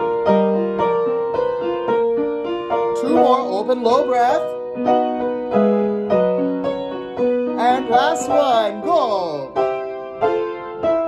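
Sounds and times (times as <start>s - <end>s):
piano chords: 0.0s - 11.0s
man's voice sliding: 7.6s - 9.4s.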